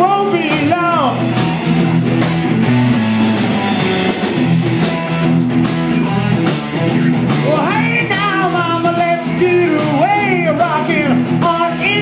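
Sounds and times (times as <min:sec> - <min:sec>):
drum kit: 0:00.0 - 0:12.0
electric guitar: 0:00.0 - 0:12.0.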